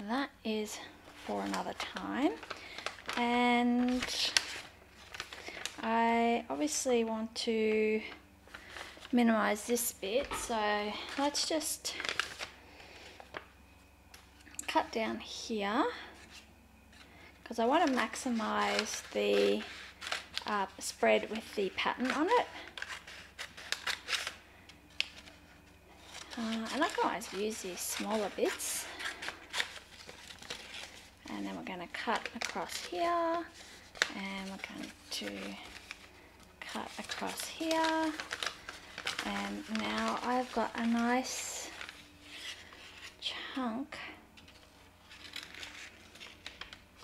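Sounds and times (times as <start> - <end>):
paper packaging rustling: 1.0 - 6.0, 7.9 - 13.5, 16.0 - 43.2, 44.4 - 47.0.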